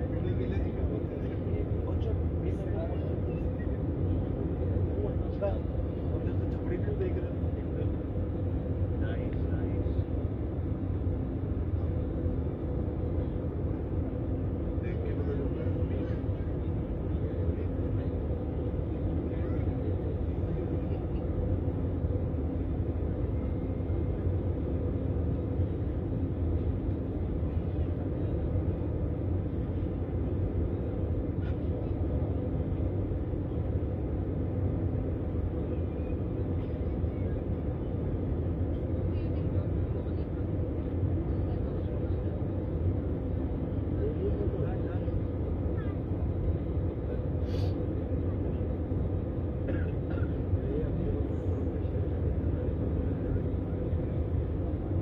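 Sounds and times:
constant hum tone: 0:00.0 - 0:55.0
jet engines and airflow drone: 0:00.0 - 0:55.0.

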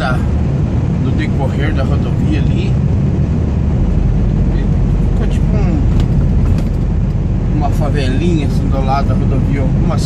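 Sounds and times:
road noise: 0:00.0 - 0:10.0
truck diesel engine drone: 0:00.0 - 0:10.0.

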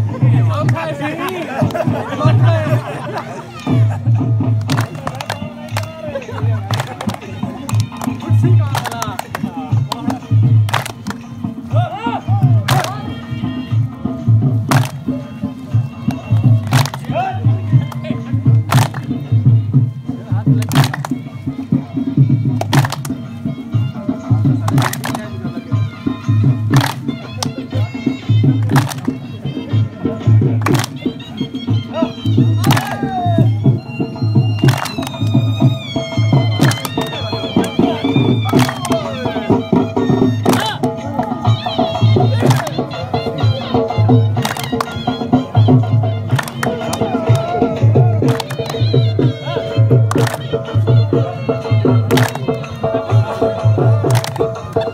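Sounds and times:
drum beating: 0:00.0 - 0:54.9
hand claps: 0:00.6 - 0:01.9, 0:04.4 - 0:11.7, 0:12.6 - 0:13.2, 0:14.4 - 0:15.2, 0:16.0 - 0:19.6, 0:20.4 - 0:31.6, 0:32.2 - 0:54.9
men shouting encouragement: 0:32.7 - 0:33.6.

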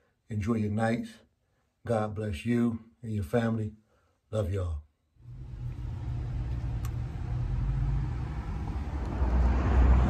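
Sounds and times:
car rumble inside cabin: 0:05.2 - 0:10.0
faint click: 0:06.5 - 0:07.0.

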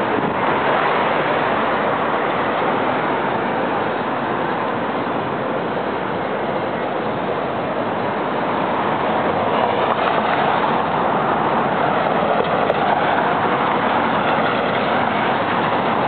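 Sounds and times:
city street traffic: 0:00.0 - 0:16.0.

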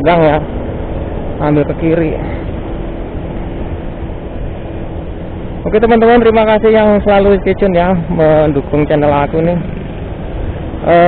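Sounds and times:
motor scooter running: 0:00.0 - 0:11.0
wind on microphone: 0:00.0 - 0:11.0.

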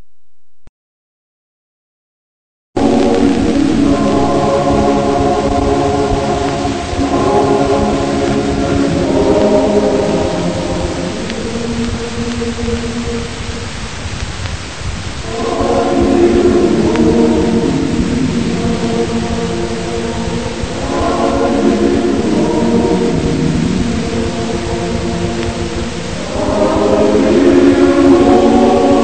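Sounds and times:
choir singing sustained chords: 0:02.8 - 0:14.2, 0:15.0 - 0:29.0.

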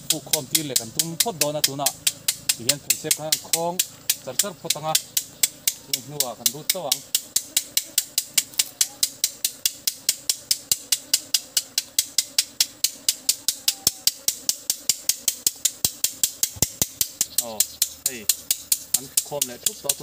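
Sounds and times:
insect clicking: 0:00.0 - 0:20.0.

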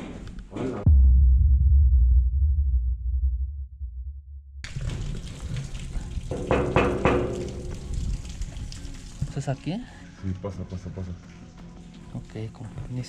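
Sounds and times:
deep low rumble: 0:00.7 - 0:06.3
scattered knocks: 0:06.3 - 0:07.8.

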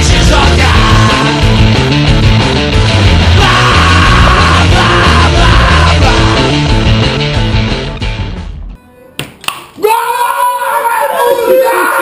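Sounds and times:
shouted vocal: 0:00.0 - 0:01.4, 0:03.2 - 0:06.6, 0:09.8 - 0:12.0
loud rock music: 0:00.0 - 0:08.8.

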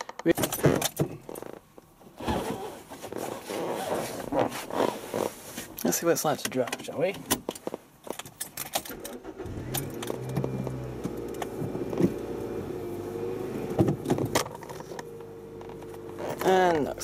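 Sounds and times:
car engine starting and idling: 0:08.6 - 0:17.0
knocks and clicks inside car: 0:09.8 - 0:12.3, 0:13.6 - 0:15.1.

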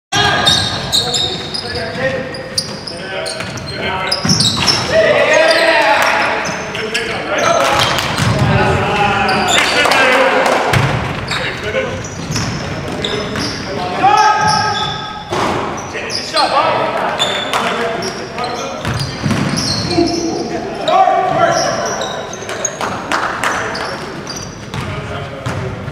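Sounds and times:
players calling out: 0:00.1 - 0:25.5
sneakers squeaking: 0:00.2 - 0:10.0, 0:10.7 - 0:25.9.

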